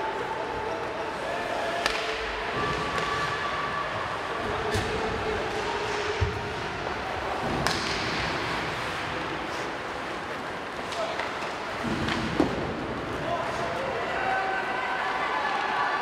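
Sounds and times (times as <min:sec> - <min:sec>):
hockey stick hitting puck: 0:01.8 - 0:03.4, 0:07.4 - 0:08.6.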